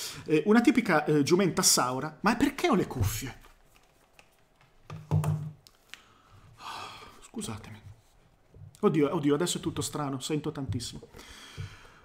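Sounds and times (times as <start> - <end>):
breath: 5.9 - 7.2, 11.2 - 12.0.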